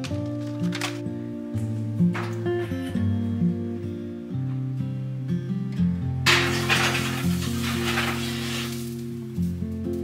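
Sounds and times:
acoustic guitar music: 0:00.0 - 0:10.0
dish scraping across oven rack: 0:06.3 - 0:09.1.

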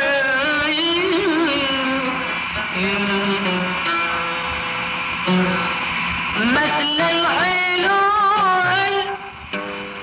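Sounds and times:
man singing: 0:00.0 - 0:03.6
instrumental accompaniment: 0:00.0 - 0:10.0.

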